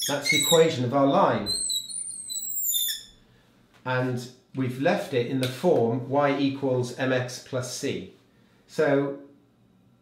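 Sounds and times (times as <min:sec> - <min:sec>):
marker squeaking on glass: 0:00.0 - 0:00.8, 0:01.4 - 0:03.2
man talking: 0:00.1 - 0:01.6, 0:03.8 - 0:09.3.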